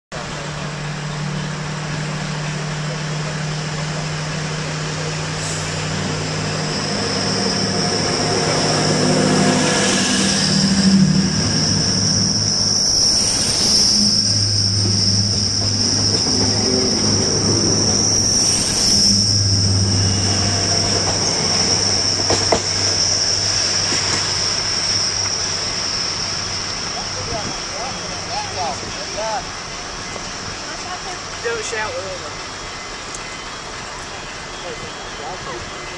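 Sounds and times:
diesel locomotive engine humming: 0:00.1 - 0:35.9
high steady whine: 0:00.1 - 0:35.9
passenger train passing: 0:00.1 - 0:35.9.

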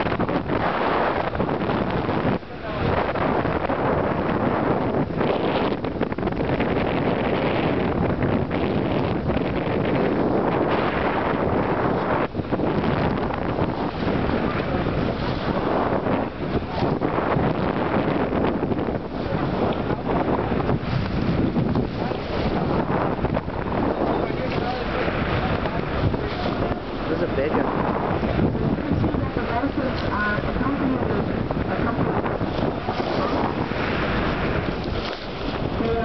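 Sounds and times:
sea water rushing along hull: 0:00.0 - 0:36.0
wind buffeting microphone: 0:00.0 - 0:36.0.

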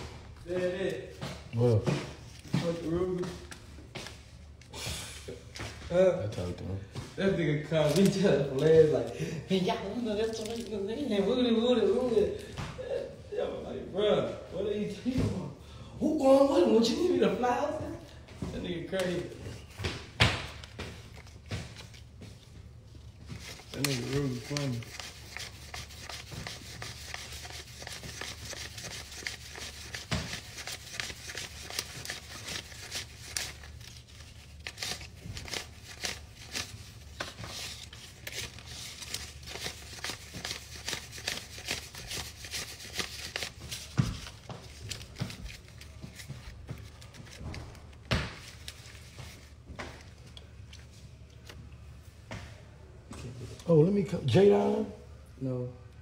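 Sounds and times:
paper bills flicking and crinkling: 0:07.7 - 0:09.2, 0:09.9 - 0:12.5, 0:20.3 - 0:50.2.

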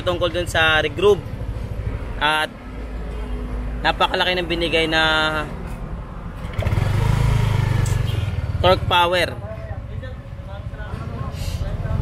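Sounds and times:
motorcycle engine running: 0:06.4 - 0:09.1.

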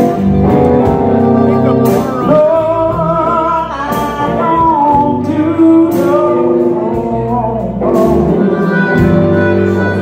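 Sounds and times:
live blues band playing: 0:00.0 - 0:10.0.

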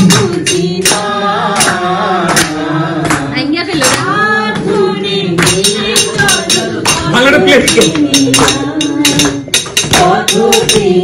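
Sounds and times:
people clapping along: 0:00.0 - 0:11.0.

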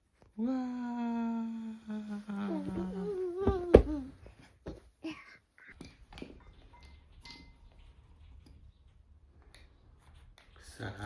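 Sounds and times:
higher voice wavering: 0:00.4 - 0:04.1
person humming a long note: 0:00.4 - 0:04.1.

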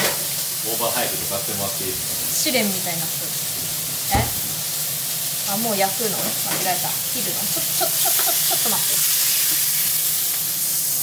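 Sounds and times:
steak sizzling in a pan: 0:00.0 - 0:11.0.

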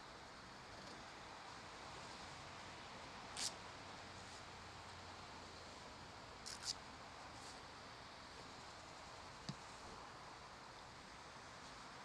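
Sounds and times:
quiet steady hiss: 0:00.0 - 0:12.0.

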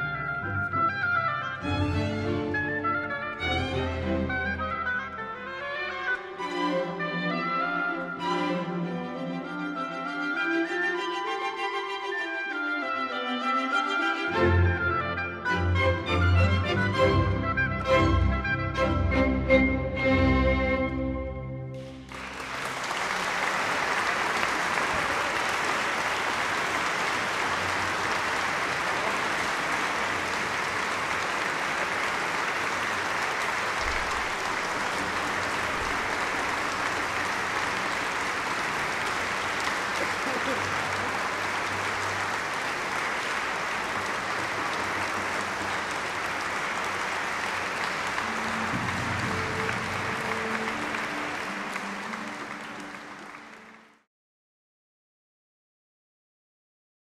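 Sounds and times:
audience applauding: 0:21.8 - 0:54.1.

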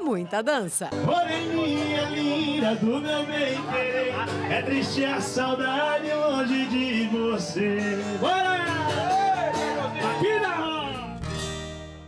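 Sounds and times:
acoustic guitar: 0:00.0 - 0:12.0
man singing: 0:01.0 - 0:11.2.

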